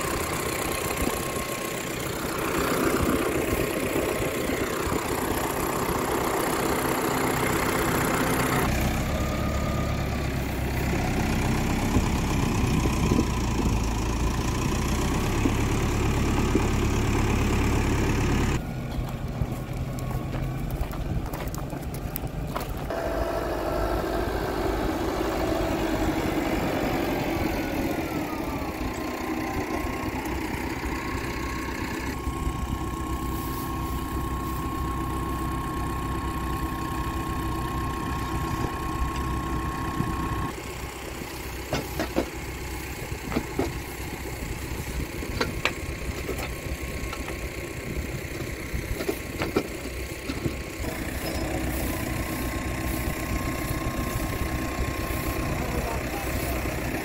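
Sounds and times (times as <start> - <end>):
tractor engine running: 0.0 - 57.0.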